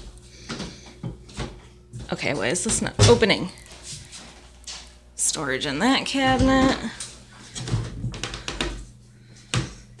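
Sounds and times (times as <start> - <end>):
cabinet doors knocking and clicking: 7.7 - 8.8.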